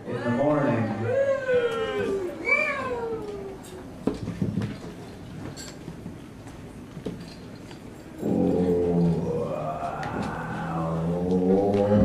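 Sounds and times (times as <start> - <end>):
droning howl-like pitched tone: 8.2 - 12.0.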